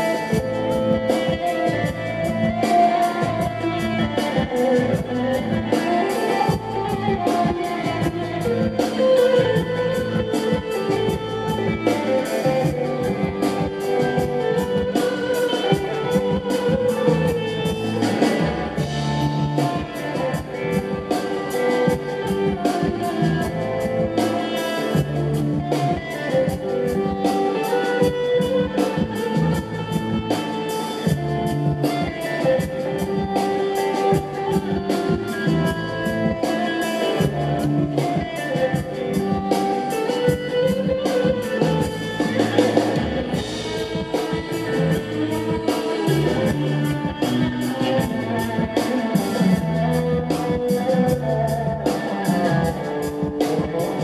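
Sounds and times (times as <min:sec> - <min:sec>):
drums: 0:00.0 - 0:54.0
electric bass guitar: 0:00.0 - 0:54.0
lead electric guitar: 0:00.0 - 0:54.0.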